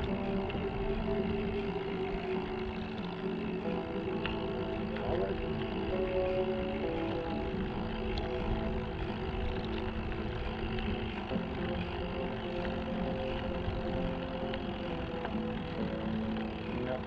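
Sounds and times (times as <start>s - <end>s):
steady held tones: 0.0s - 17.0s
wind rumbling on microphone: 0.0s - 17.0s.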